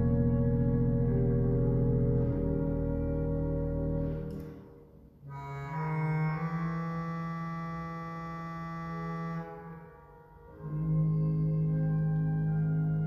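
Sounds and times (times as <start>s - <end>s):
organ playing sustained chords: 0.0s - 13.0s.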